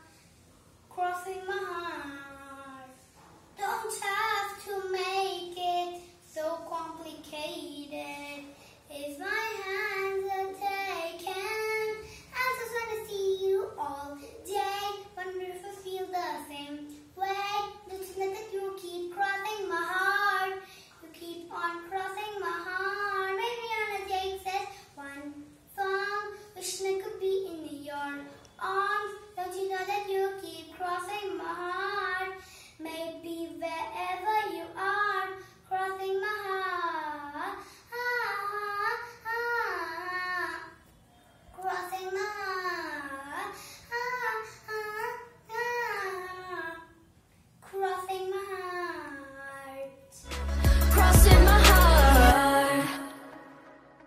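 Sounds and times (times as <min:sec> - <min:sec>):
girl singing: 0:00.9 - 0:40.8, 0:41.6 - 0:54.0
girl singing solo: 0:50.2 - 0:54.0.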